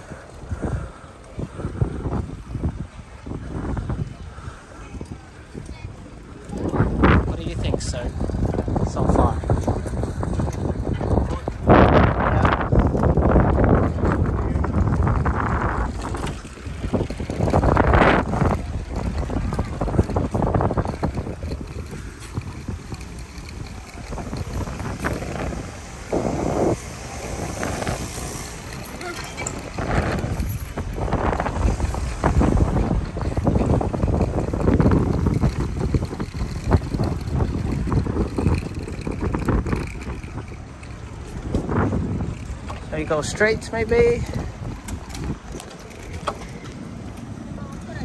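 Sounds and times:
wind buffeting microphone: 0.0 - 48.0
bike rolling over brick paving: 5.4 - 48.0.

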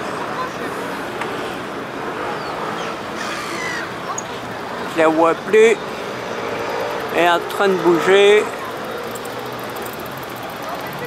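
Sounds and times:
faint distant voices: 0.0 - 11.0
traffic hum: 0.0 - 11.0.

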